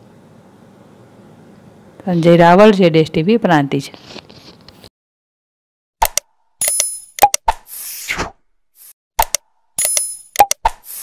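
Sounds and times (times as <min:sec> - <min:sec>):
sharp clicks: 0:06.0 - 0:07.6, 0:09.2 - 0:10.8.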